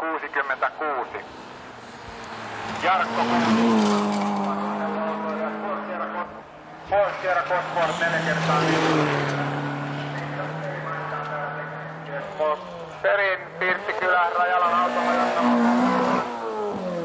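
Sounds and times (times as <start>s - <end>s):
rally car engine at high revs: 1.1s - 17.0s.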